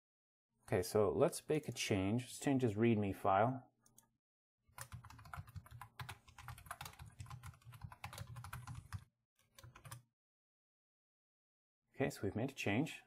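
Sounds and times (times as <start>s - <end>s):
typing on computer keyboard: 4.7s - 10.0s.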